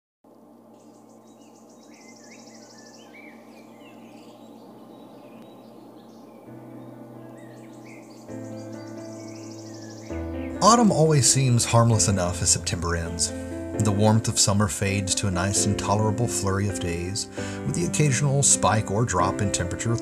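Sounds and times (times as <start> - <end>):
birds chirping: 0.3 - 20.0
insects trilling in pulsed bursts: 0.5 - 13.2
low sustained music chord: 0.7 - 20.0.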